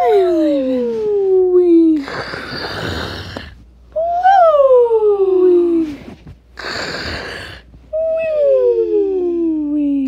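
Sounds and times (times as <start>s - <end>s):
cartoon snoring: 2.0s - 3.6s, 6.6s - 7.7s.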